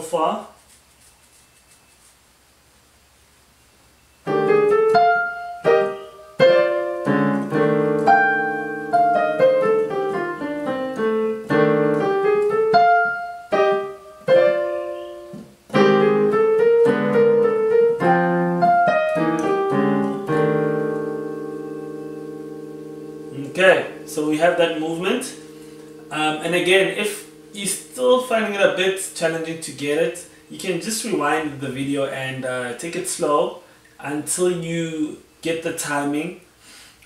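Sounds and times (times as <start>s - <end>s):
digital piano playing: 4.2s - 33.5s.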